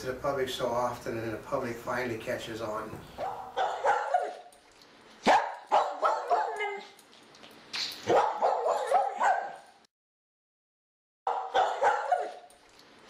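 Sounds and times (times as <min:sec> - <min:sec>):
dog barking and yipping: 0:03.2 - 0:04.6, 0:05.2 - 0:07.0, 0:07.9 - 0:09.8, 0:11.3 - 0:12.6.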